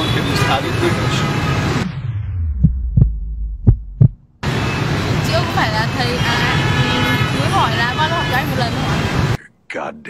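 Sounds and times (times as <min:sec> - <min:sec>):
low hum: 0:01.8 - 0:04.4
heartbeat thumps: 0:01.9 - 0:04.3.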